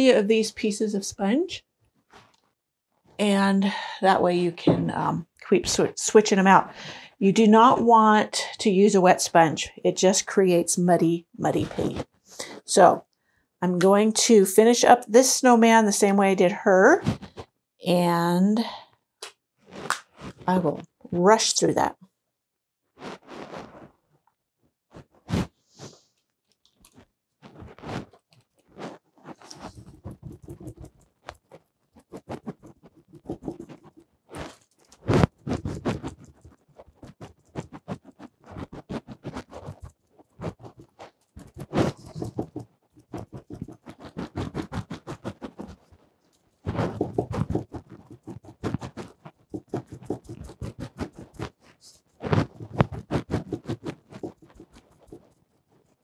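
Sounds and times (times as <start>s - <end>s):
sponge dabbing on canvas: 27.5s - 46.0s, 46.6s - 56.0s.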